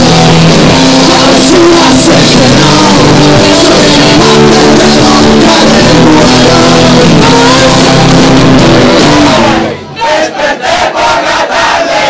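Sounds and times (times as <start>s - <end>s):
live rock band playing: 0.0s - 9.9s.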